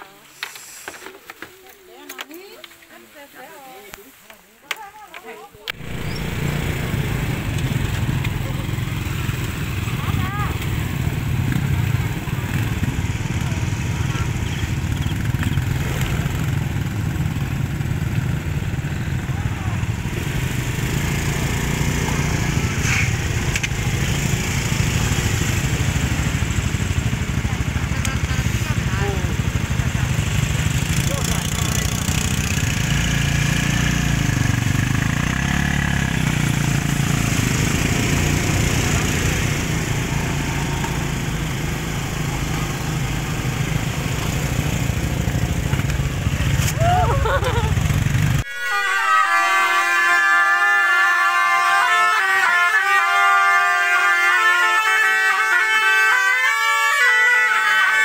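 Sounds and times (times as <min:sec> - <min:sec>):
motorcycle engines humming: 0:05.1 - 0:48.5.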